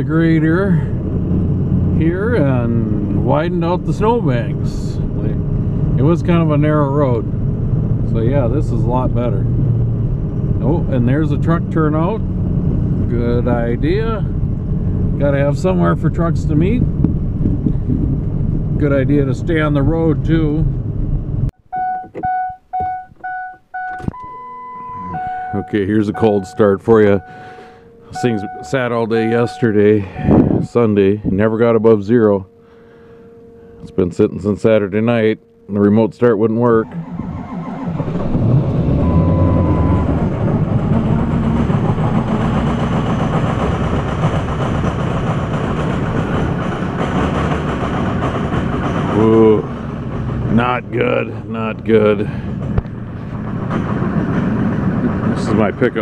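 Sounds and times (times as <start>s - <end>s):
cab driving noise: 0.0s - 56.0s
dashboard warning beeps: 21.6s - 31.0s, 39.0s - 40.2s
steady higher warning tone: 21.6s - 42.5s
truck engine cold start: 21.7s - 31.4s, 36.6s - 56.0s
clunk: 21.9s - 26.3s.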